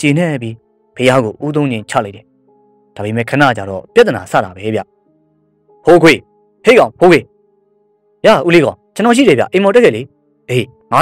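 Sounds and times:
narrator speaking: 0.0 - 2.2, 3.0 - 4.9, 5.8 - 7.3, 8.2 - 11.0
faint background music tone: 0.0 - 11.0.

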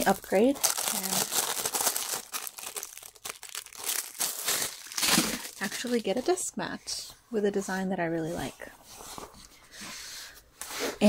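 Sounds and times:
plastic wrapping crinkling: 0.0 - 6.4.

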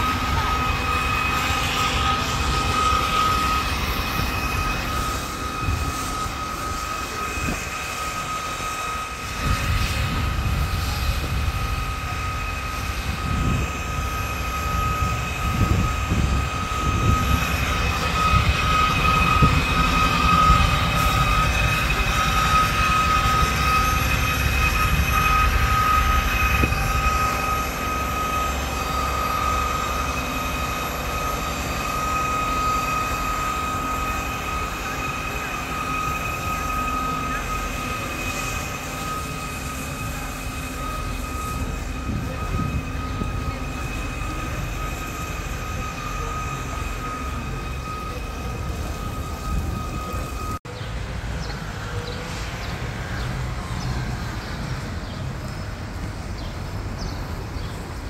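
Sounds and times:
machine whine and rumble: 0.0 - 58.0.

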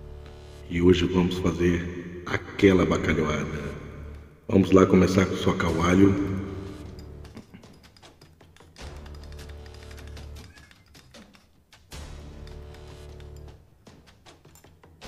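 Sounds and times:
background music with bass notes: 0.0 - 7.6.

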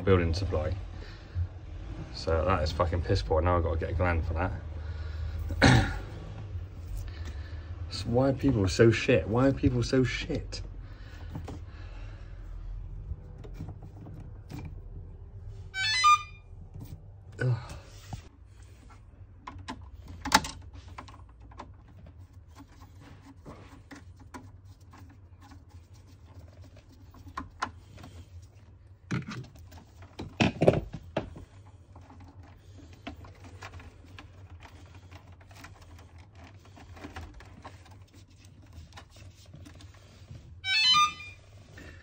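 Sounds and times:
cable clicking and rustling: 12.8 - 15.4, 16.6 - 42.0.

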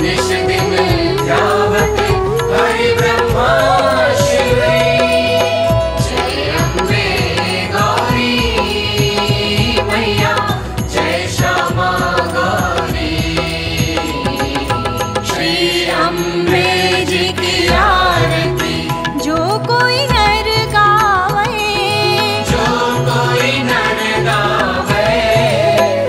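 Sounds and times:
devotional music with singing: 0.0 - 26.0.

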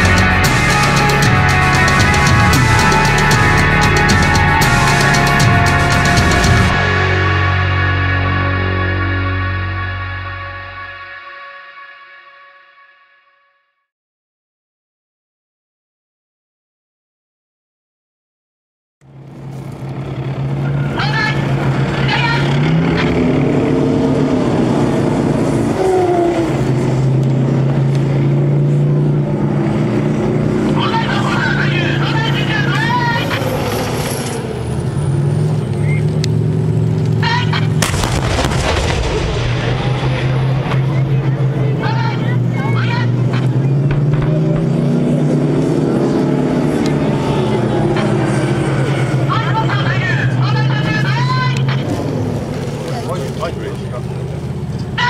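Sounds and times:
tank diesel engine revving: 0.0 - 11.2, 19.0 - 55.0
sharp bang: 43.4 - 46.0.

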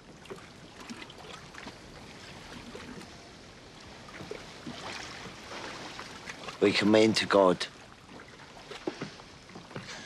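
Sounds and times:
water lapping against hull: 0.0 - 10.0
boat knocks and creaks: 8.1 - 10.0.

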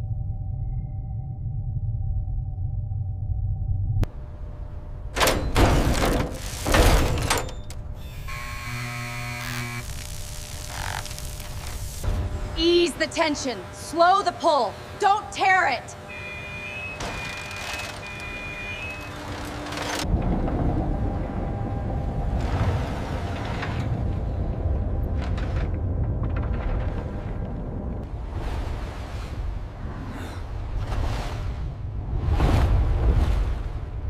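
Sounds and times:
deep rumble: 0.0 - 8.2, 18.5 - 34.0.

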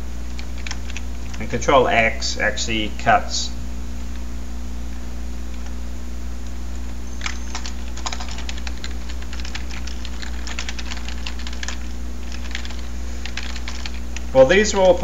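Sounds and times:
steady low hum: 0.0 - 15.0
computer keyboard typing: 0.3 - 1.5, 7.2 - 15.0.

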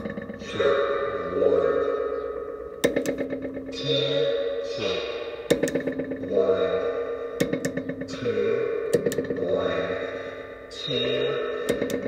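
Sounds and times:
looping electronic delay echoes: 0.0 - 12.0.

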